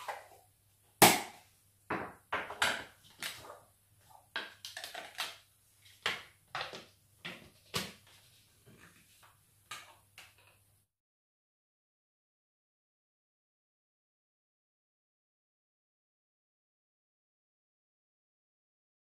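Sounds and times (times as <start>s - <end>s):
kitchen things knocking and clattering: 1.9s - 3.4s, 4.3s - 5.4s.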